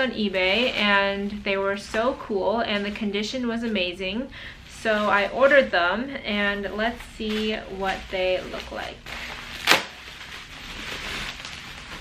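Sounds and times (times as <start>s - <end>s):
bubble wrap and paper crinkling: 6.3s - 12.0s.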